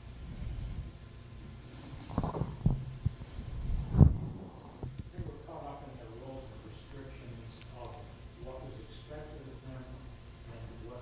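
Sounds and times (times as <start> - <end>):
microphone handling thumps: 2.0 - 5.4.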